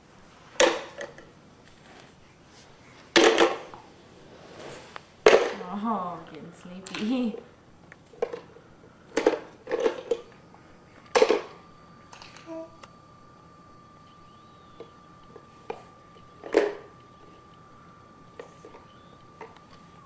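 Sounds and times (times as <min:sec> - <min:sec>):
faint steady high tone: 0:08.2 - 0:20.0.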